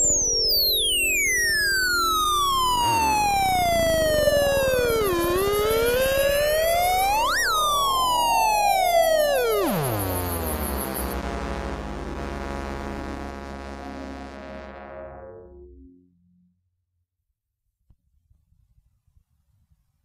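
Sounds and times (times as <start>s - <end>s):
synthesizer tone sweeping in pitch: 0.0s - 16.5s.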